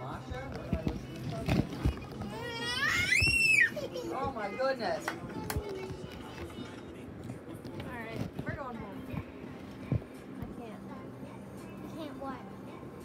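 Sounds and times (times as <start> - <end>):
child squealing: 2.3 - 3.9.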